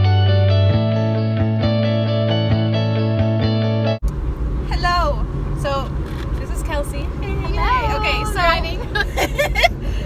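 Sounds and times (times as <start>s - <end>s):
low road and engine rumble: 3.4s - 10.0s.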